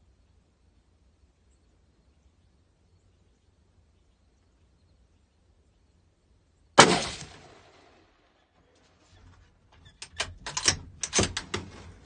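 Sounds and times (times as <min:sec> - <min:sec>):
gunshot: 0:06.8 - 0:08.0.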